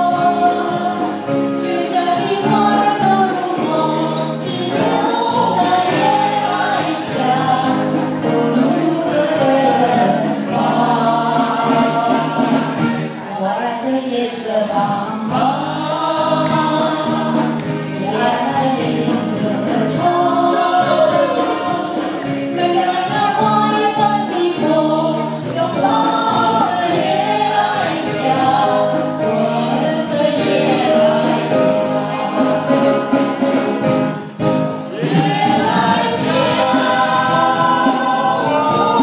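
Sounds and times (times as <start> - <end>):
live band with drums: 0.0 - 39.0
voices singing into microphones: 0.0 - 39.0.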